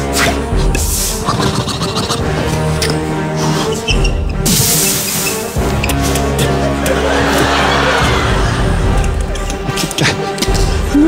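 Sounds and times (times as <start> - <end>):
keyboard music: 0.0 - 11.0.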